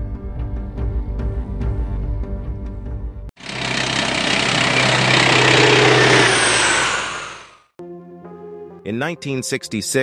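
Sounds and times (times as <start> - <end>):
rushing engine noise: 3.4 - 7.7.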